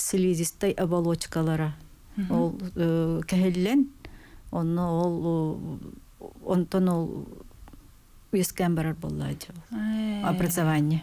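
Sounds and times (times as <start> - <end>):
woman speaking: 0.0 - 7.5, 8.3 - 11.0.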